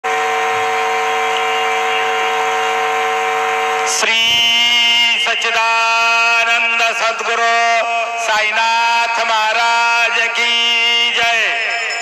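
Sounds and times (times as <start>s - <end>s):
musical drone: 0.1s - 6.3s.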